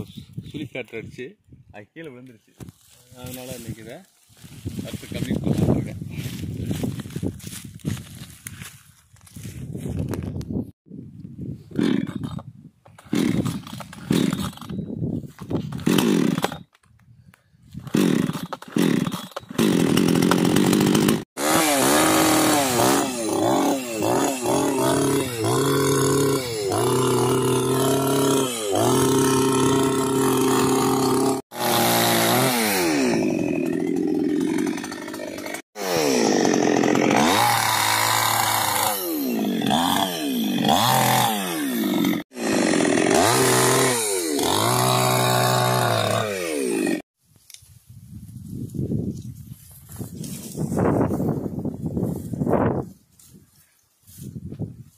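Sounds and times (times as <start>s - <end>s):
chainsaw revving: 11.8s - 12.4s, 13.0s - 14.7s, 15.7s - 16.7s, 17.9s - 47.1s.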